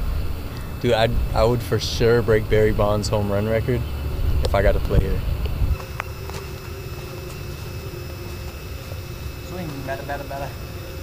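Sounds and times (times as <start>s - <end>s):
faint constant hum: 0.0s - 11.0s
low outdoor rumble: 0.0s - 11.0s.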